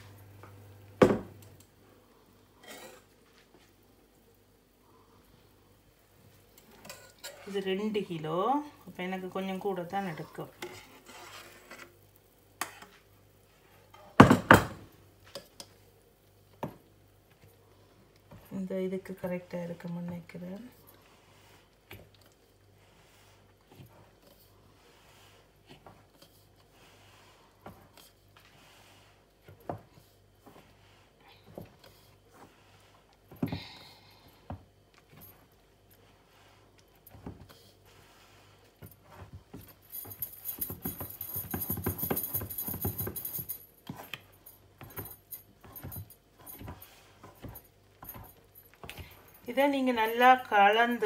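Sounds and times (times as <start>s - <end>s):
spoon scraping a steel bowl: 6.8s - 7.8s, 10.0s - 12.0s
bangles jingling: 39.7s - 46.8s.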